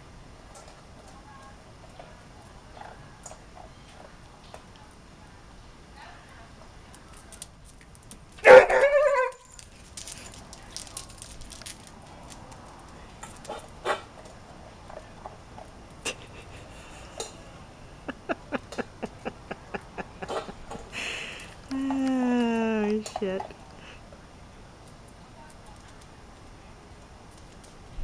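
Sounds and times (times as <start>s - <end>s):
dog barking: 8.4s - 9.4s, 13.5s - 14.1s.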